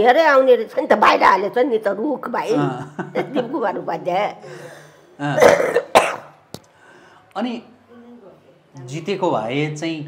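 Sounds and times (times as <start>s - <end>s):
woman clearing her throat: 5.2s - 6.4s
woman coughing: 5.3s - 6.4s.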